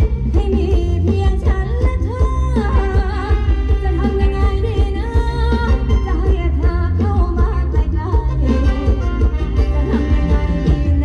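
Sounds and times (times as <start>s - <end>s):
heavy bass beat: 0.0s - 11.0s
live band playing dance music: 0.0s - 11.0s.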